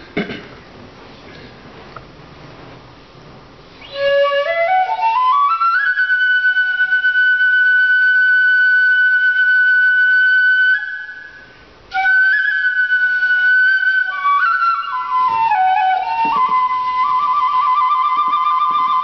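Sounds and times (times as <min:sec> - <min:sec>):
bamboo flute playing solo: 0:03.8 - 0:19.0.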